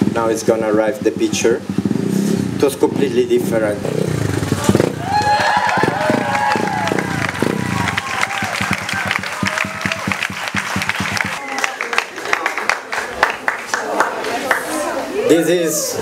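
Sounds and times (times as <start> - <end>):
motorcycle engine idling: 0.0 - 11.4
audience applauding and cheering: 5.0 - 14.7.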